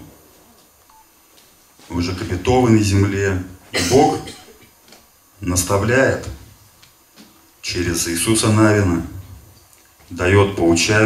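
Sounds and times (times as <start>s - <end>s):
man speaking through a microphone: 10.1s - 11.0s.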